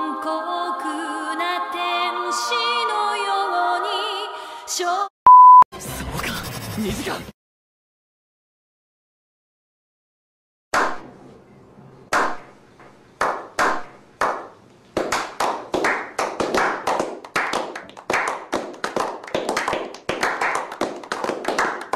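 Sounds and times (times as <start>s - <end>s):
group clapping: 12.1s - 12.5s, 13.2s - 21.9s.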